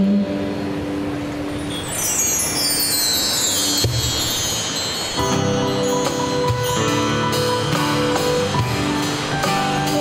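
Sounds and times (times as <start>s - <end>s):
live band instrumental music: 1.0s - 10.0s
bar chimes shimmering: 1.3s - 8.1s.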